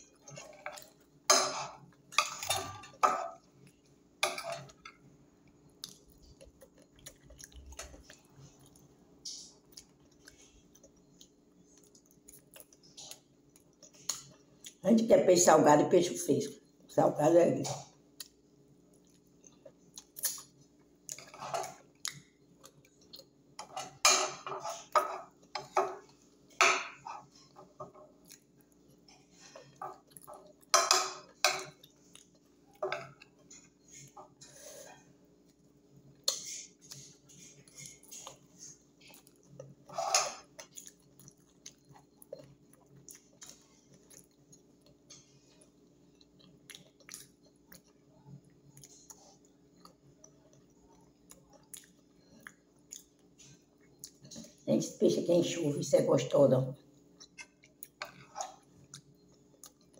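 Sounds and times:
chewing and mouth smacks: 0:05.5 - 0:14.8, 0:18.2 - 0:23.4, 0:27.2 - 0:34.2, 0:35.4 - 0:54.4, 0:57.1 - 0:59.9.

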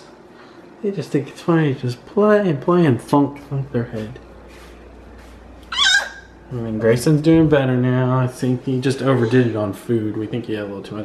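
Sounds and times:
toddler squealing: 0:05.7 - 0:06.4.

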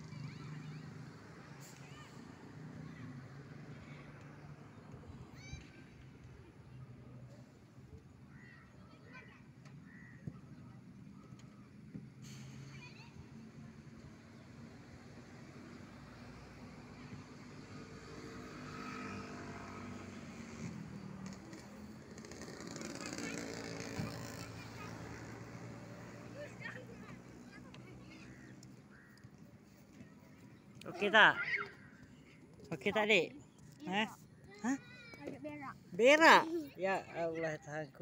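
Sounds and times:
far-off children's voices: 0:00.0 - 0:22.0, 0:22.7 - 0:32.6
distant road traffic hum: 0:00.0 - 0:38.0.

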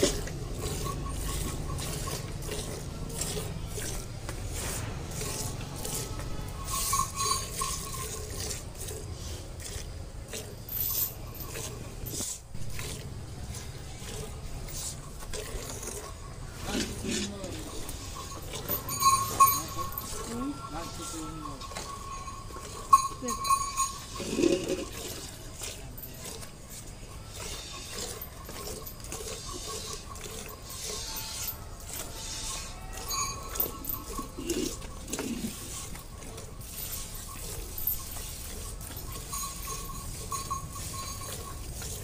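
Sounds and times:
ringing metallic strokes: 0:00.0 - 0:08.7, 0:10.6 - 0:12.4, 0:13.2 - 0:42.0
milk squirting into steel bucket: 0:00.0 - 0:42.0
sharp metallic clink: 0:17.8 - 0:20.4.

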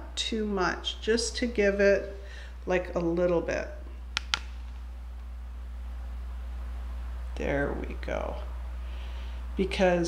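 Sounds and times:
steady low hum: 0:00.0 - 0:10.0
quick clicks: 0:04.2 - 0:04.6.

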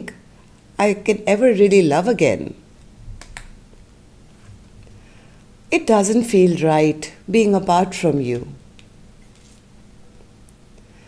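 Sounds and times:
faint card handling: 0:09.2 - 0:10.3.

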